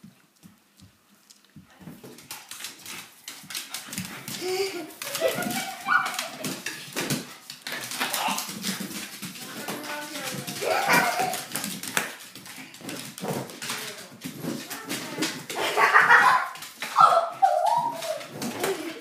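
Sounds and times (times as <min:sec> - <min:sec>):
dog paws scuffling on hardwood: 0:00.0 - 0:19.0.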